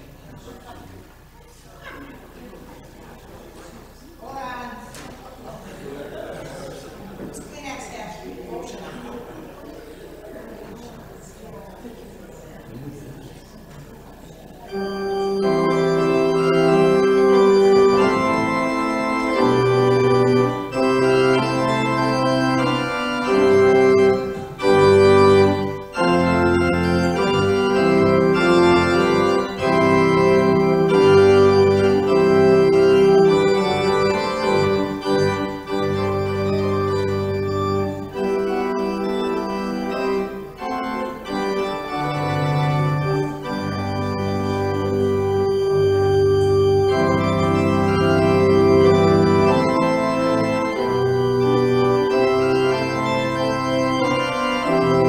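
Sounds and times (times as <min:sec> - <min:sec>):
church organ playing chords: 0:12.7 - 0:55.0.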